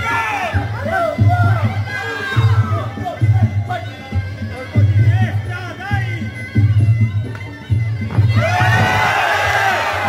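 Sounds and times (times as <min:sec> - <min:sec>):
crowd shouting and cheering: 0:00.0 - 0:03.9, 0:08.1 - 0:10.0
fight music: 0:08.4 - 0:10.0.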